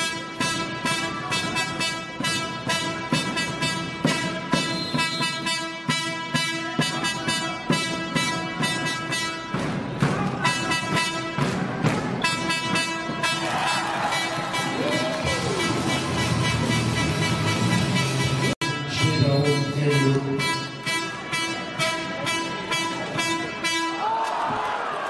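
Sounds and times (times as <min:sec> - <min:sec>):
background music with steady beat: 0:00.0 - 0:24.1.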